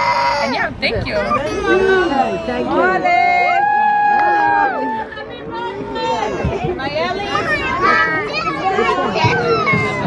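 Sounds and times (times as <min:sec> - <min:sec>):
children and adults chattering: 0:00.0 - 0:10.0.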